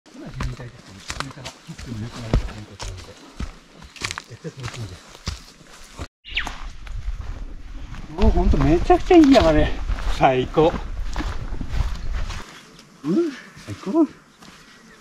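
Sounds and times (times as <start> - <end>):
footsteps on dirt trail: 0.1 - 15.0.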